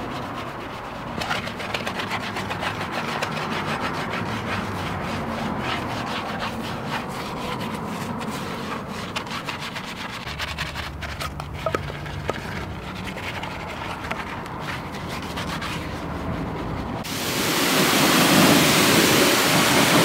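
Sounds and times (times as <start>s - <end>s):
brush scrubbing wheel: 0.0s - 20.0s.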